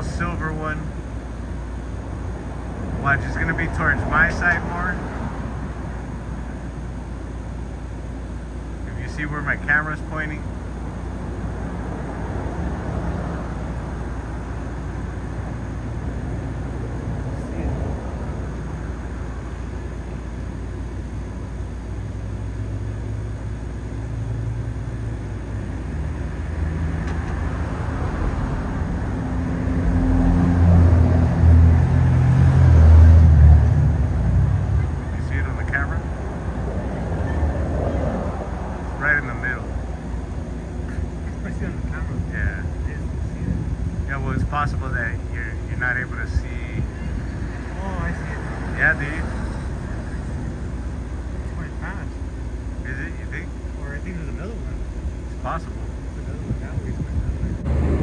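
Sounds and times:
traffic rumble: 0:00.0 - 0:58.0
motor vehicle passing: 0:11.3 - 0:19.5, 0:25.5 - 0:53.5, 0:56.4 - 0:58.0.

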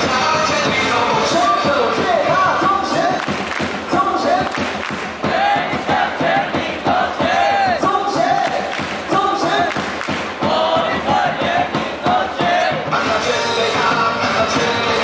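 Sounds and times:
music over loudspeakers: 0:00.0 - 0:15.0
stadium crowd chanting and singing: 0:00.0 - 0:15.0.

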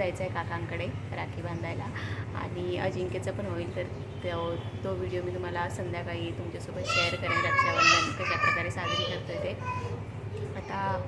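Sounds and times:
woman talking: 0:00.0 - 0:09.6
child's voice: 0:06.7 - 0:11.0.

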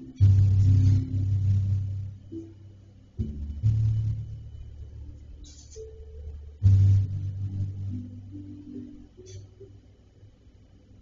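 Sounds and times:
low rumble: 0:00.0 - 0:11.0
steady low hum: 0:00.0 - 0:11.0.

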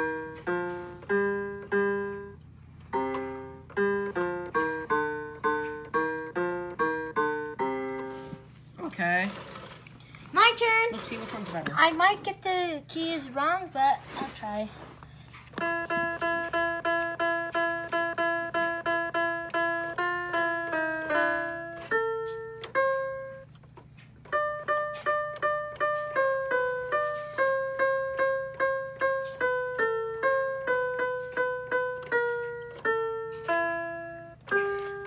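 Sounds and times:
toy electronic keyboard notes: 0:00.0 - 0:08.6, 0:15.3 - 0:35.0.

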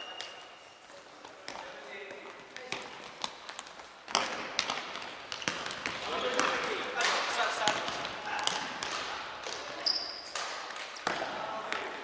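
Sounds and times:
ball bouncing on wooden floor: 0:01.2 - 0:06.8, 0:07.6 - 0:12.0.

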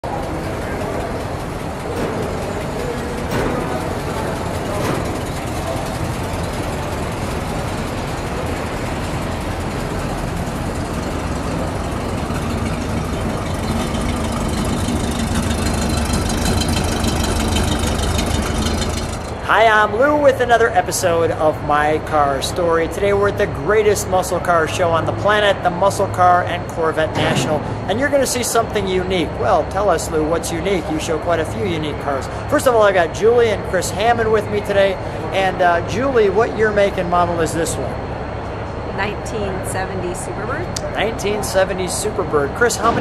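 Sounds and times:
car engine rumbling at low speed: 0:00.0 - 0:43.0.

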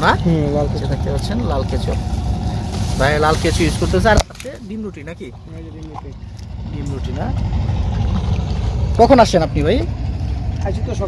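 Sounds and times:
low steady engine drone: 0:00.0 - 0:11.0.

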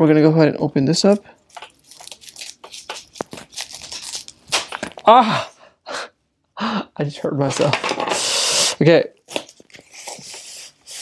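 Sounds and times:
packaging wrap crinkling: 0:01.0 - 0:05.1.

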